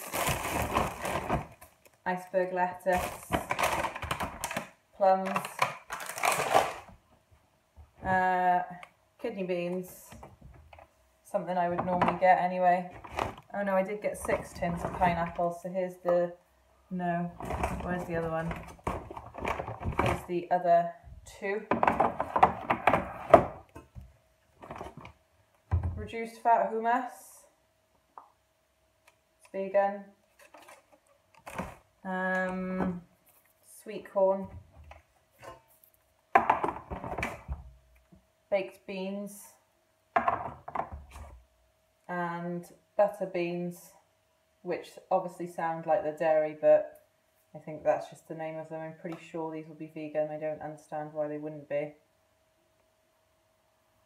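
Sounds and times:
plastic shopping bag rustling: 0.0 - 1.9, 2.8 - 6.9
plastic packaging crinkling: 0.0 - 2.0, 2.9 - 7.0, 30.3 - 32.5.

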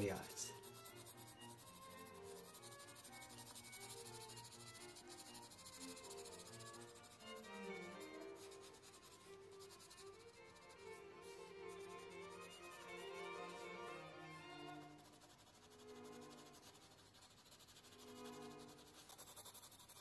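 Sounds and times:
pencil shading on paper: 0.0 - 20.0
soft background music: 0.0 - 20.0.

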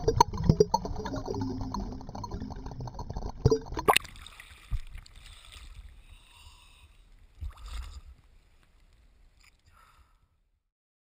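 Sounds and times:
low rumble: 0.0 - 3.9.

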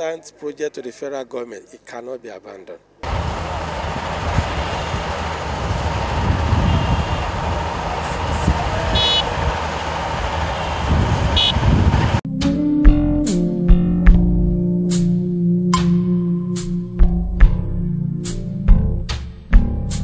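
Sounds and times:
bulldozer diesel engine rumbling: 3.0 - 12.2.

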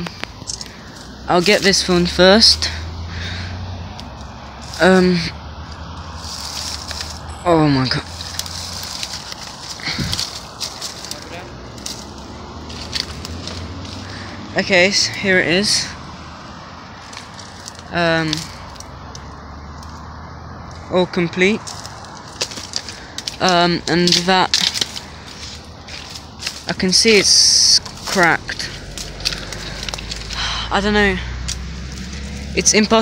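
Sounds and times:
distant road traffic rumble: 0.0 - 33.0
leaves and twigs crackling: 0.0 - 33.0
plastic clicks and rustles: 8.0 - 14.0, 21.6 - 27.2.

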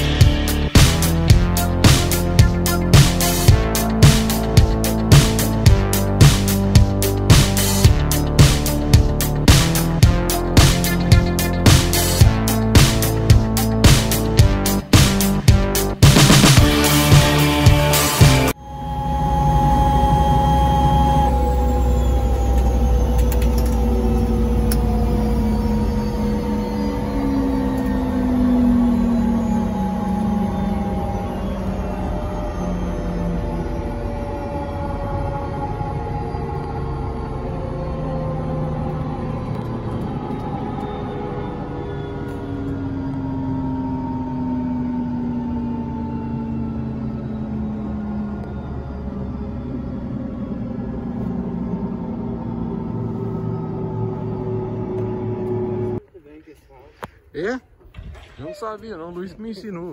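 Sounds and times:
turbine engine and rotor winding down: 0.0 - 56.1.

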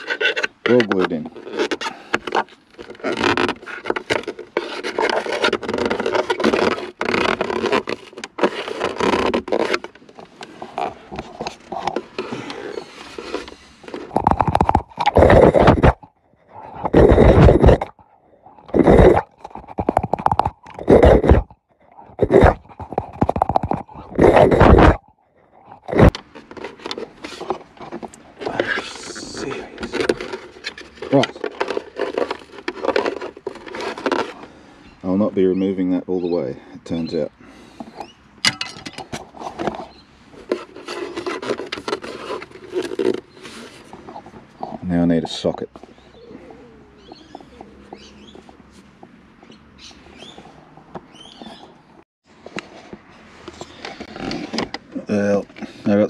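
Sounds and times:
scraping plastic trim by hand: 0.0 - 18.0, 18.6 - 21.5, 22.1 - 25.0, 25.7 - 34.6, 39.0 - 48.6.

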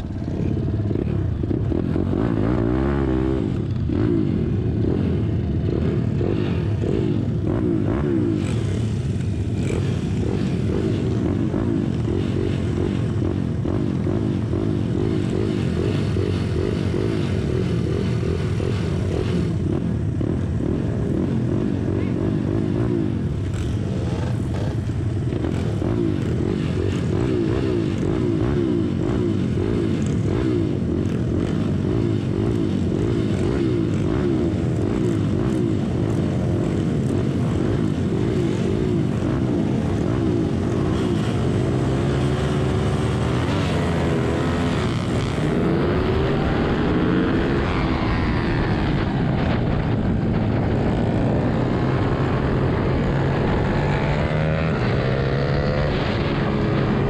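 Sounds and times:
minibike engines idling and revving: 0.0 - 57.0.

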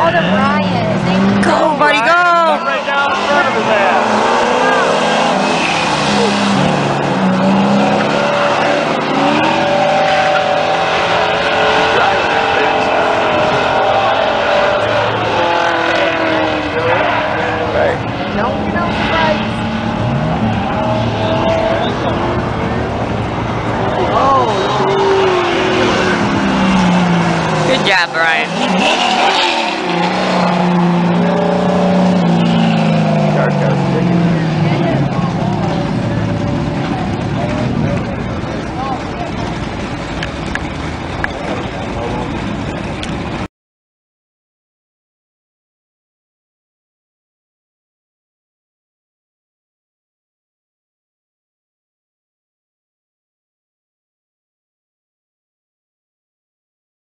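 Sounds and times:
car engines revving: 0.0 - 43.5.

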